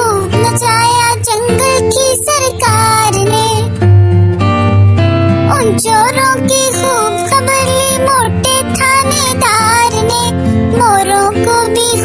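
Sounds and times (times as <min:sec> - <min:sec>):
child-like voice singing: 0:00.0 - 0:03.8, 0:05.5 - 0:12.0
backing track music: 0:00.0 - 0:12.0.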